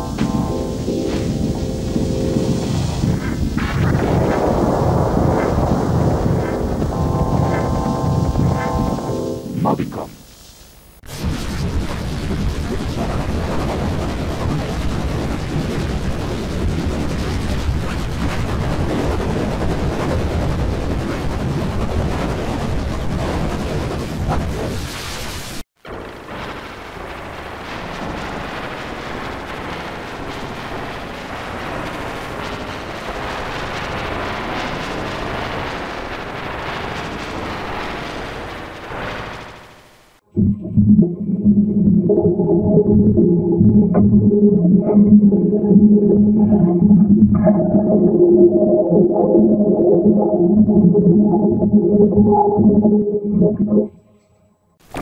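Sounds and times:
synthesizer music with held chords: 0:00.0 - 0:10.1
harsh distorted noisy music: 0:00.0 - 0:10.2.

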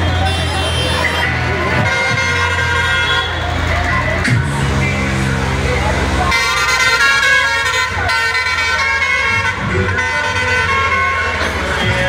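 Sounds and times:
vehicle horn blast: 0:00.0 - 0:03.4, 0:06.3 - 0:12.0
traffic engine hum: 0:00.0 - 0:12.0.

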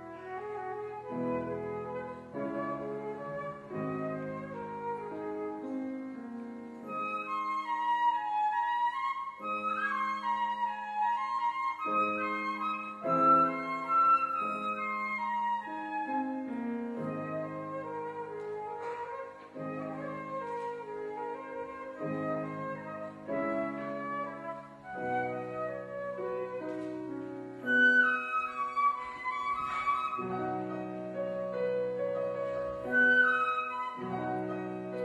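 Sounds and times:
flute melody: 0:00.0 - 0:35.0
piano chords: 0:00.0 - 0:35.0.

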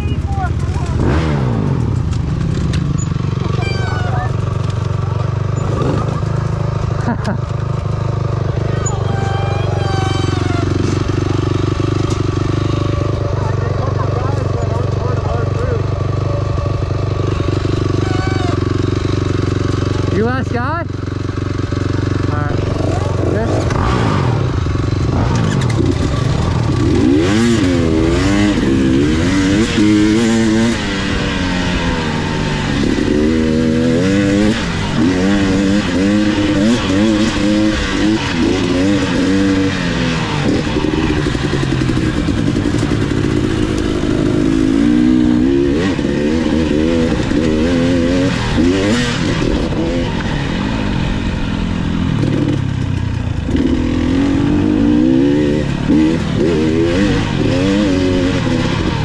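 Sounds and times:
dirt bike engine revving: 0:00.0 - 0:59.0.

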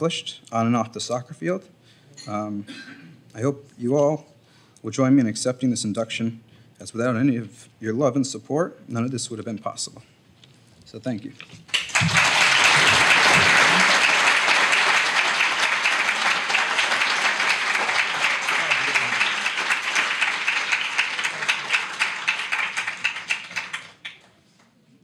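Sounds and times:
audience applauding: 0:11.7 - 0:24.4.

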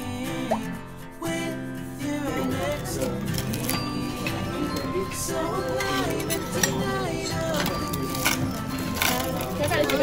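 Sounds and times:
background music: 0:00.0 - 0:10.0
table chatter: 0:02.6 - 0:10.0.

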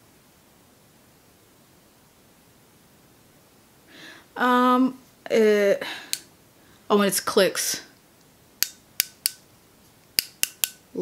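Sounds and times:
plastic pen clicking: 0:08.6 - 0:09.4, 0:10.2 - 0:10.8.

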